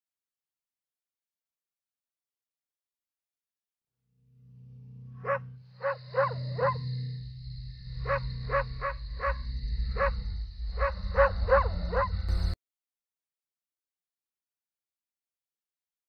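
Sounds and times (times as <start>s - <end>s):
large dog barking: 5.2s - 6.8s, 10.8s - 12.2s
steady low hum: 6.4s - 12.6s.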